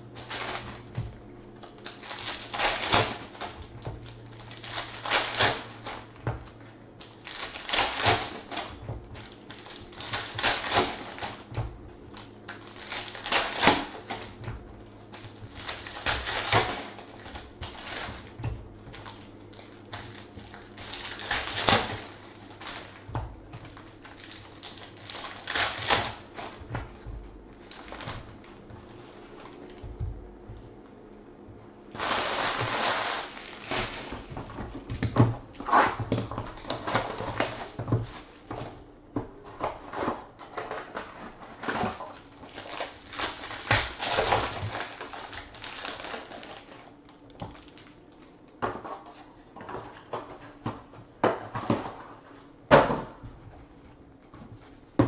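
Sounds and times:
wrappers crinkling: 0.0s - 30.0s, 31.9s - 35.0s, 35.6s - 38.4s, 41.5s - 48.5s.

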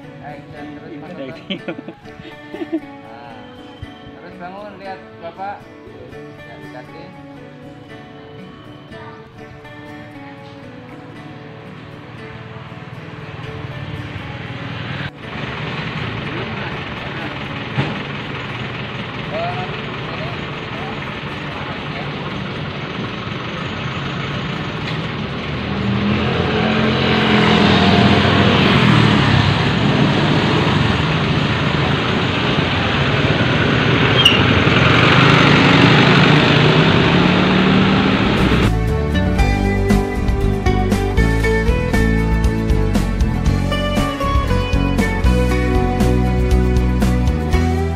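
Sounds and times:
vehicle engine running: 12.6s - 47.9s.

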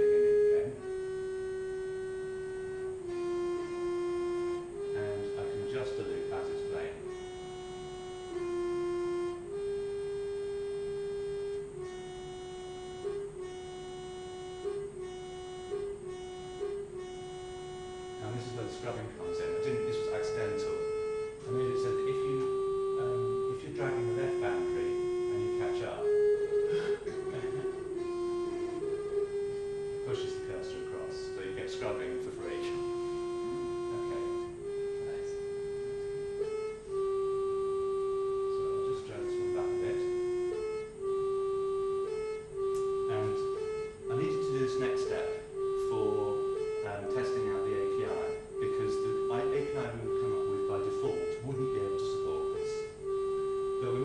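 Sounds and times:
slow tune over loudspeakers: 0.0s - 54.0s
short clicky bursts: 42.6s - 43.0s.

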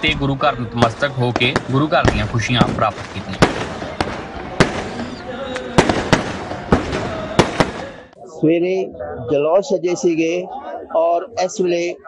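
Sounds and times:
fireworks exploding: 0.0s - 8.1s
background din: 0.0s - 8.3s.

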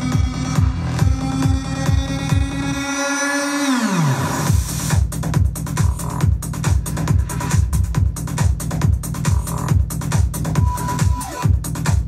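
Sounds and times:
hard techno kick drum: 0.0s - 2.8s, 4.2s - 12.0s.

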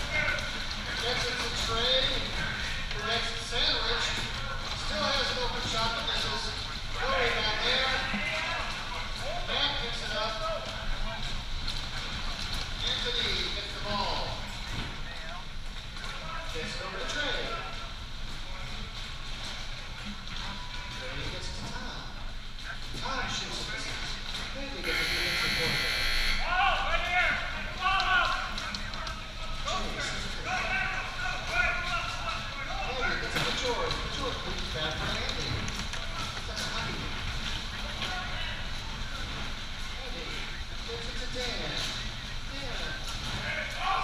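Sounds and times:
electronic buzzer: 24.8s - 26.5s
players calling and shouting: 24.8s - 29.4s.

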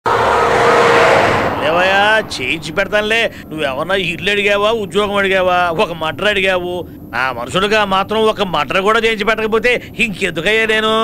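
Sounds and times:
car driving fast: 0.0s - 3.8s
wavering high squeal: 0.1s - 3.7s
man speaking: 1.6s - 11.0s.

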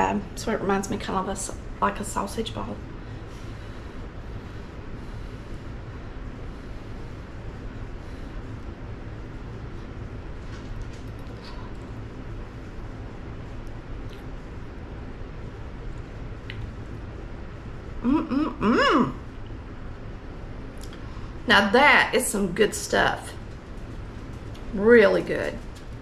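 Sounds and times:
room hum and hiss: 0.0s - 26.0s.

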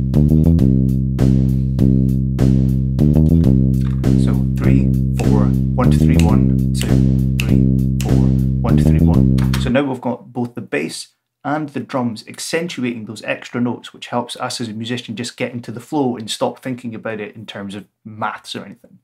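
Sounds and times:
synth bass notes: 0.0s - 9.8s
drum beat: 3.8s - 9.7s.

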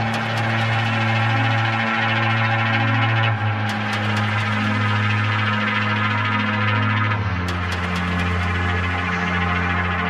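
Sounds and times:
electronic house music: 0.0s - 10.0s.

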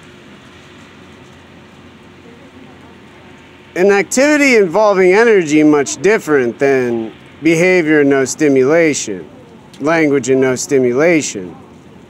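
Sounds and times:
even hiss and rumble: 0.0s - 12.0s
faint steady hum: 0.0s - 12.0s.

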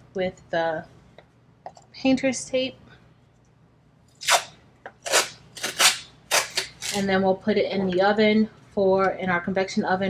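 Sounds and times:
tape ripping off roll: 4.2s - 7.0s.

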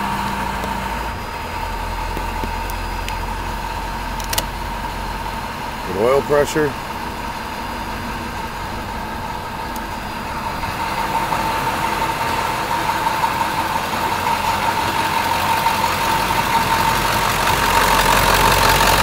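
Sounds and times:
steady high whine: 0.0s - 18.9s
diesel engine idling: 0.0s - 19.0s.

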